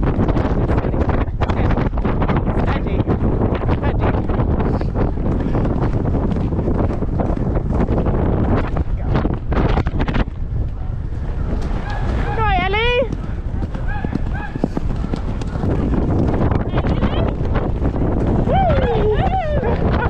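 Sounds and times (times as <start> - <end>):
wind buffeting microphone: 0.0 - 20.0
horse hoofbeats on grass: 11.4 - 18.5.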